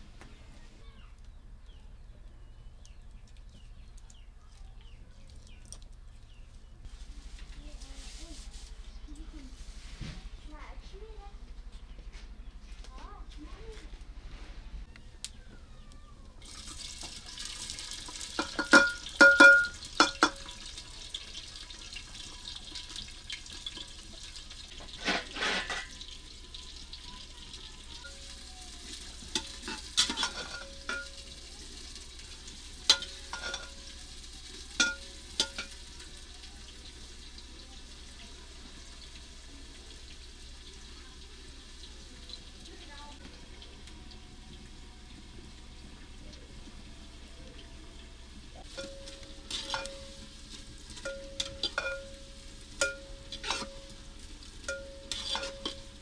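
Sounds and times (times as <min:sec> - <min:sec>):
food sizzling in hot oil: 0:16.4 - 0:56.0
metal spoon clanking against pot: 0:18.3 - 0:20.5, 0:29.2 - 0:31.4, 0:32.8 - 0:33.9, 0:34.8 - 0:35.8, 0:48.7 - 0:54.0, 0:54.6 - 0:56.0.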